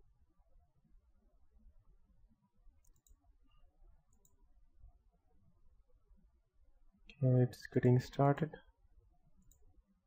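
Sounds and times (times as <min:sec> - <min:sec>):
computer mouse clicks: 0:02.8 - 0:03.2, 0:04.1 - 0:04.4, 0:09.4 - 0:09.7.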